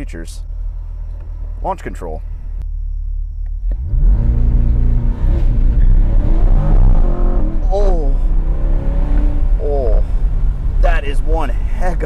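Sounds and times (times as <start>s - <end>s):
car engine accelerating hard: 3.7s - 10.9s.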